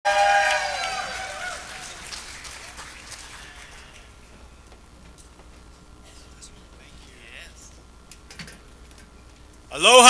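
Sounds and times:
audience applauding: 0.1s - 4.2s
audience cheering: 0.1s - 4.2s.

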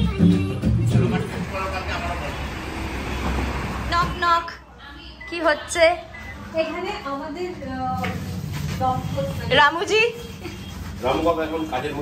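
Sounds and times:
passing vehicles rumble: 0.6s - 4.8s, 7.1s - 11.1s.

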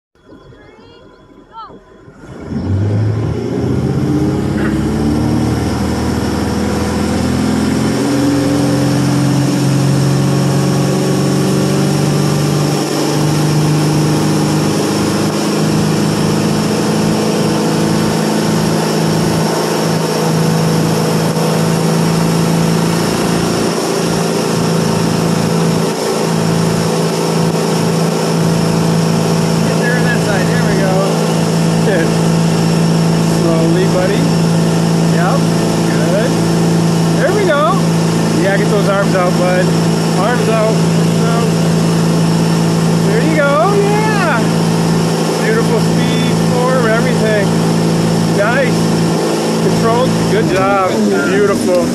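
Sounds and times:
water rushing against hull: 1.8s - 51.9s
boat engine at full throttle: 2.0s - 51.9s.

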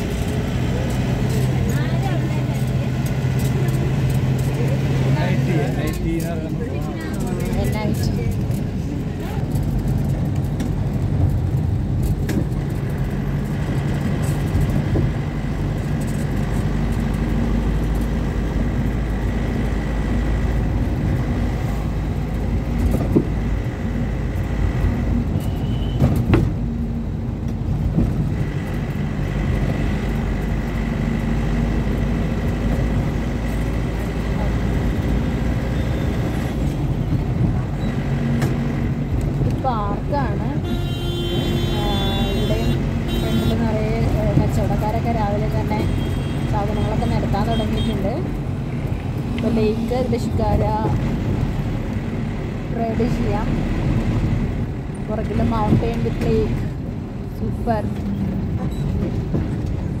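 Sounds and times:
vehicle engine and road drone: 0.0s - 60.0s.

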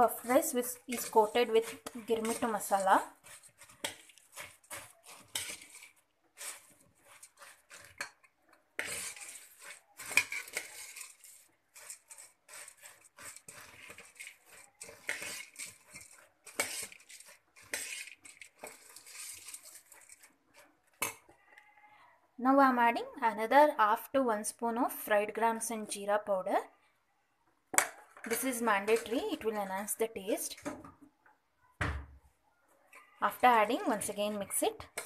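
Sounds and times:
spoon scraping a pan: 0.0s - 22.0s, 27.8s - 30.9s, 32.9s - 35.0s.

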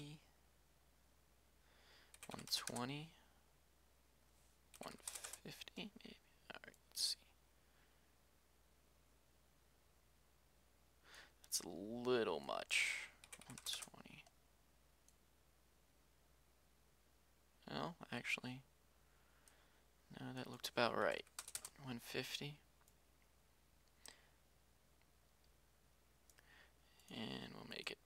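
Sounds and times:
computer keyboard keystrokes: 2.1s - 2.8s, 4.7s - 5.4s, 13.2s - 13.9s, 21.2s - 21.8s
computer mouse click: 2.1s - 2.8s, 4.7s - 5.4s.

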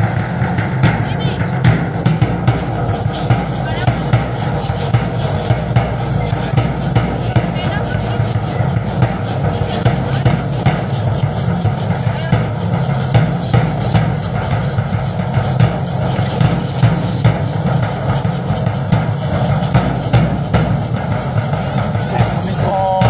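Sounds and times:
drum beating quick rhythm: 0.0s - 23.0s
voices: 0.5s - 13.2s, 21.5s - 23.0s.

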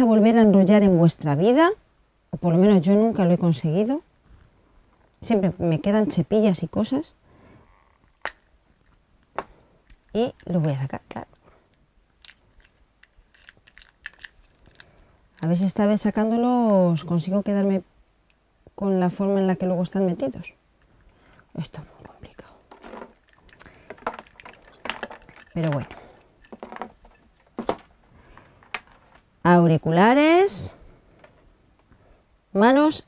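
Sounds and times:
earphone cable handling noise: 11.4s - 15.5s, 22.7s - 29.3s
plastic case clicks and rattling: 12.2s - 14.9s, 22.7s - 27.9s.

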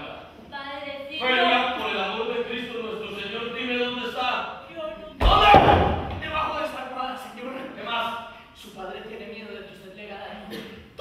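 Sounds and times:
wooden bench slammed on floor: 5.2s - 6.4s.

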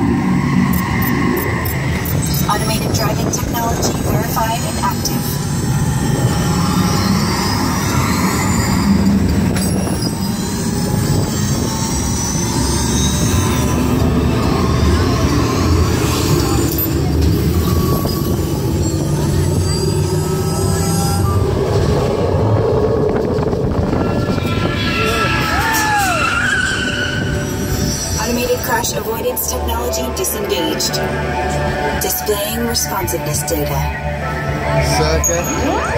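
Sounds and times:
ride car rumbling on track: 0.0s - 35.9s.

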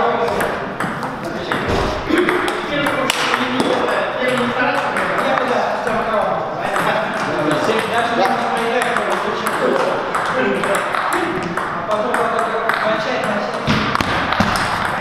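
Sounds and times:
table tennis balls clicking: 0.2s - 5.8s, 6.7s - 15.0s.

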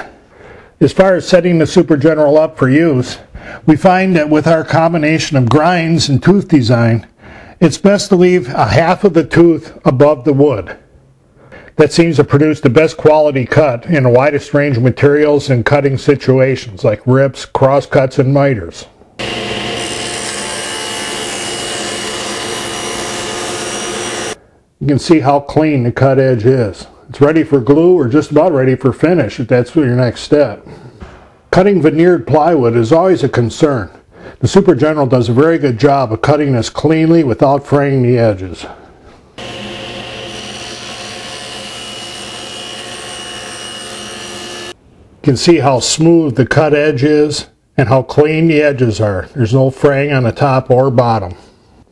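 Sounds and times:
saw motor hum: 19.2s - 24.4s, 39.4s - 44.8s
table saw cutting wood: 19.2s - 24.4s, 39.4s - 44.8s.

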